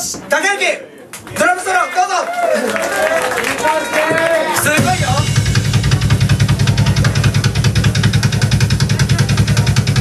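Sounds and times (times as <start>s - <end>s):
cymbals: 4.6s - 10.0s
rapid bass drum strokes: 4.6s - 10.0s.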